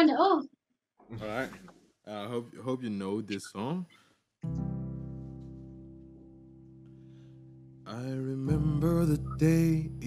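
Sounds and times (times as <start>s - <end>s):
electronic keyboard chord: 4.4s - 10.0s.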